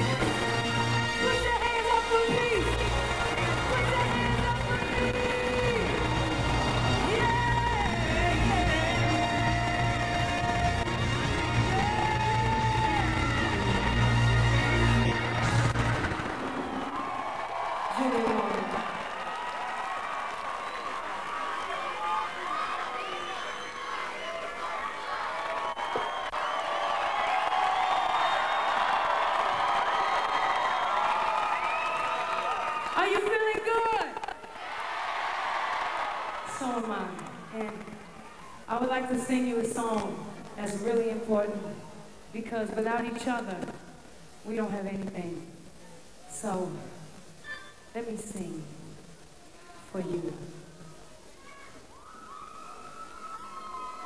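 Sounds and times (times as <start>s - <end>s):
audience cheering and whistling: 0.0s - 33.2s, 51.9s - 54.0s.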